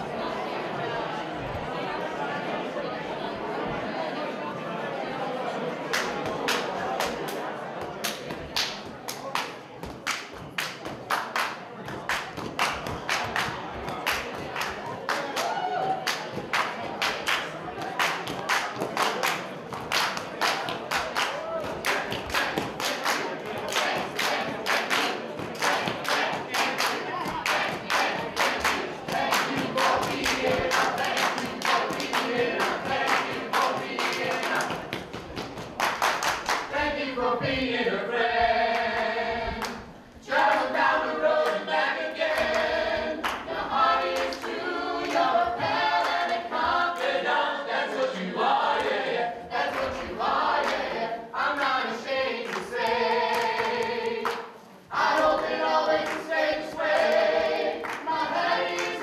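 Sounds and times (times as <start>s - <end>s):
murmur of crowd chatter: 0.0s - 59.0s
sharp handclaps: 5.9s - 7.4s, 8.0s - 36.7s, 57.8s - 58.1s
a cappella singing voices: 12.2s - 59.0s.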